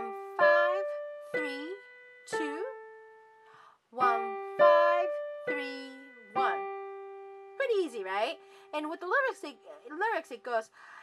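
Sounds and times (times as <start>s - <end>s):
piano notes ringing: 0.0s - 10.6s
woman speaking: 4.9s - 6.6s, 7.6s - 10.8s.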